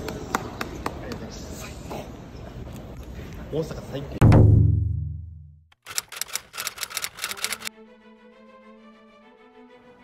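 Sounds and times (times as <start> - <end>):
typewriter key clicks: 5.9 - 7.7.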